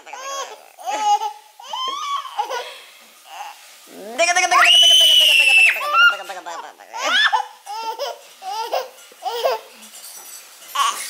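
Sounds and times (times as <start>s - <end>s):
toddler squealing and giggling: 0.1s - 3.6s, 7.0s - 9.8s.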